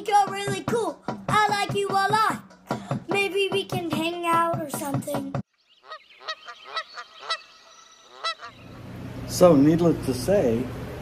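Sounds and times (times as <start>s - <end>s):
geese honking: 5.7s - 8.8s.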